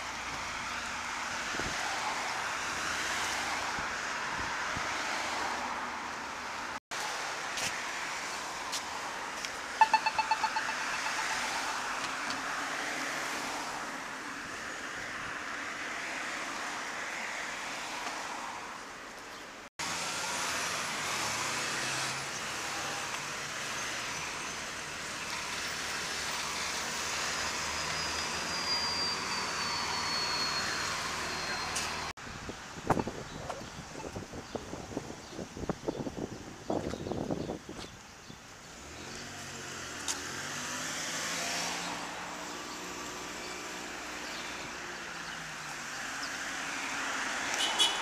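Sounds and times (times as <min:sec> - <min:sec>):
street traffic: 0:00.0 - 0:48.0
crosswalk button beeps: 0:09.8 - 0:12.1.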